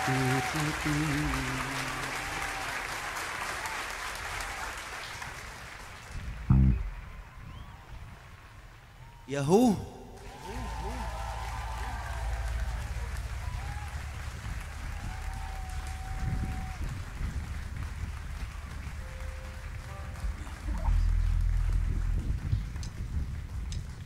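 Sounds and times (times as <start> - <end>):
audience cheers: 0.0 - 5.3, 9.0 - 17.6
audience applauding: 0.0 - 7.4, 9.6 - 24.0
deep low rumble: 6.5 - 7.3, 10.2 - 19.0, 19.7 - 24.0.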